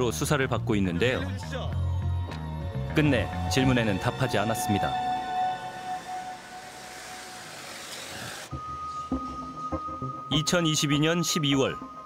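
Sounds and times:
background score music: 0.0s - 12.0s.

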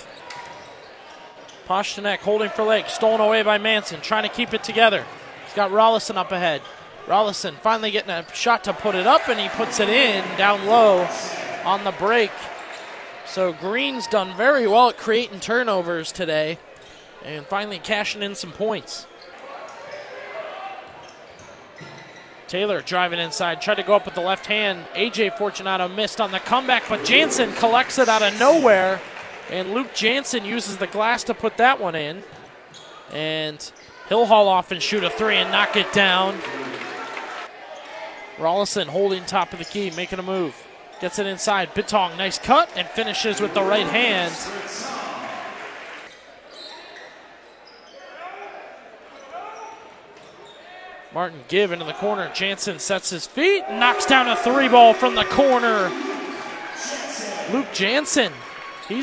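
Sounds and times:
crowd chatter: 0.0s - 15.4s, 23.3s - 32.8s, 38.9s - 46.5s, 48.2s - 59.0s
ball and players on hardwood court: 20.8s - 22.4s
crowd murmur: 26.7s - 29.1s, 53.6s - 58.4s
people shouting: 26.8s - 28.8s, 53.5s - 57.6s.

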